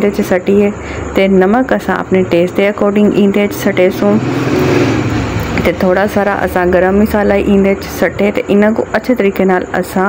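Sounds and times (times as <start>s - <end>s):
speech: 0.0s - 4.2s, 5.6s - 10.0s
loud rushing noise: 3.1s - 7.3s.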